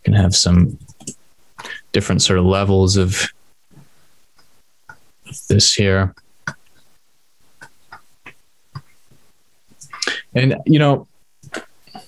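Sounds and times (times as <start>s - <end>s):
person speaking: 0.0s - 3.4s, 5.2s - 6.8s, 9.8s - 12.0s.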